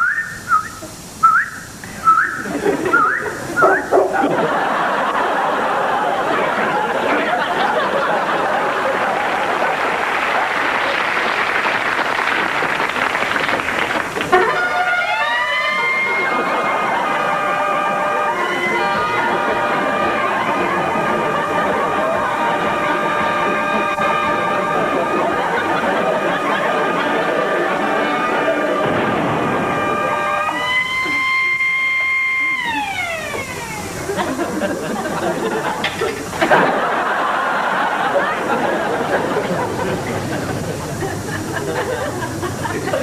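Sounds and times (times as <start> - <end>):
slot machine noisy wash: 14.0 - 40.5.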